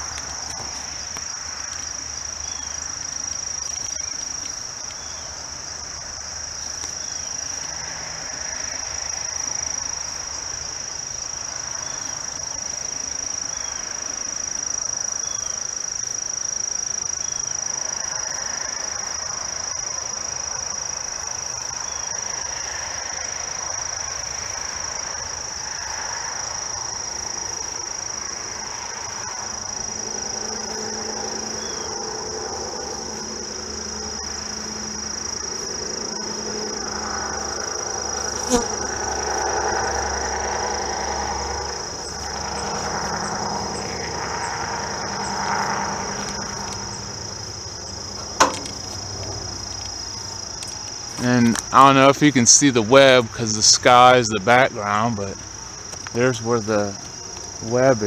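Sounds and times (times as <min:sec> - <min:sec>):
distant engine hum: 0:00.0 - 0:58.0
insects trilling: 0:00.0 - 0:58.0.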